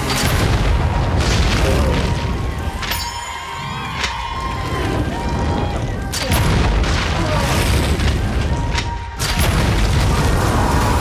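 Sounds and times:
dramatic music: 0.0s - 11.0s
deep booming rumble of fire: 0.2s - 2.8s, 4.2s - 11.0s.

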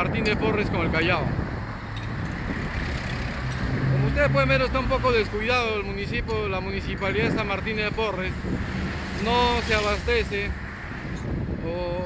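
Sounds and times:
traffic rumble and tyre hiss: 0.0s - 12.0s.

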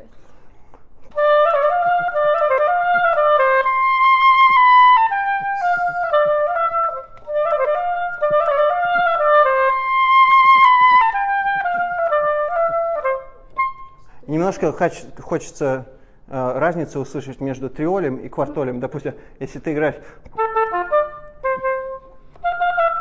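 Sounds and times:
player breathing: 0.1s - 0.9s, 5.6s - 6.1s, 19.2s - 19.4s, 20.0s - 20.3s
solo oboe melody: 1.1s - 14.2s, 20.2s - 23.0s.

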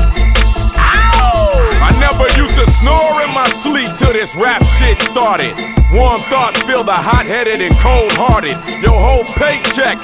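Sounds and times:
rapping over heavy bass beat: 0.9s - 10.0s.

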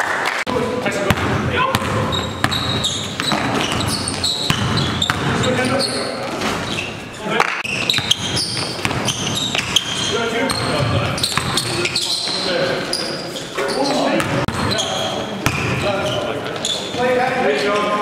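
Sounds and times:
players calling out: 0.6s - 18.0s
sneakers squeaking: 0.9s - 18.0s
basketball bouncing on gym floor: 1.0s - 5.5s, 7.6s - 11.9s, 14.2s - 15.9s.

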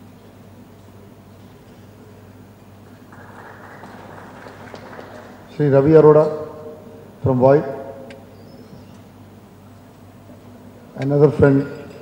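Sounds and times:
low electrical hum: 0.0s - 12.0s
faint scattered applause: 2.8s - 5.8s.

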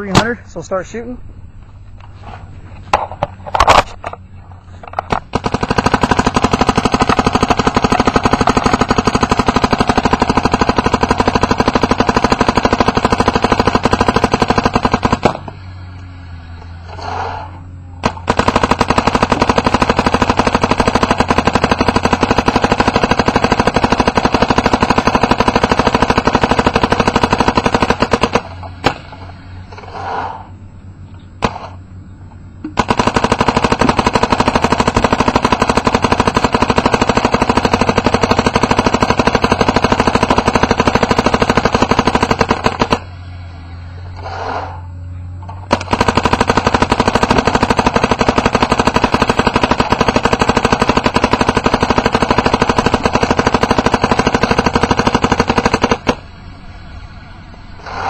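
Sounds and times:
paintball marker rapid firing: 5.0s - 15.6s, 18.0s - 29.0s, 32.7s - 43.1s, 45.6s - 56.3s.

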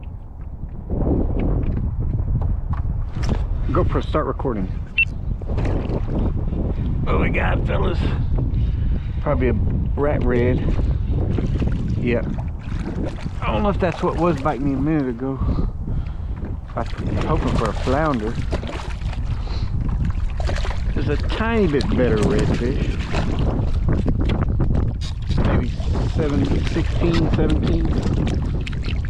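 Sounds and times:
wind buffeting microphone: 0.0s - 29.0s
faint water splashes: 10.7s - 29.0s.

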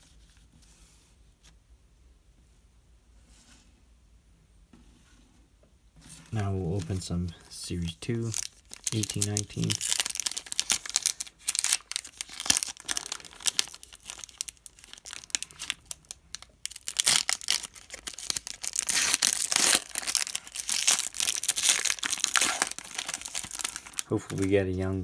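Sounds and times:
foil wrapper crinkling and tearing: 8.1s - 24.7s.

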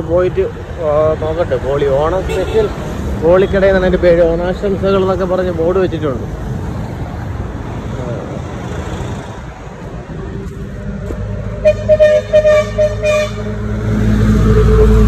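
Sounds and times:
heavy engine rumbling: 7.3s - 15.0s
vehicle horn tooting: 11.6s - 13.5s.

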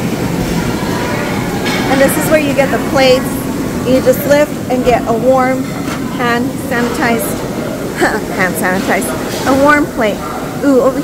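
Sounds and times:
busy buffet hall hum: 0.0s - 11.0s.

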